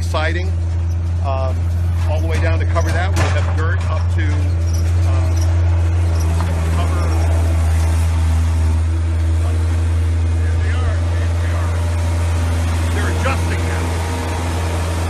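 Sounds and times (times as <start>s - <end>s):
diesel engine droning: 0.0s - 15.0s.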